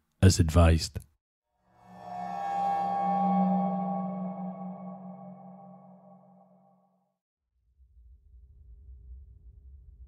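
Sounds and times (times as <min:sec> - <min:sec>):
sustained ringing tone: 0:01.6 - 0:07.0.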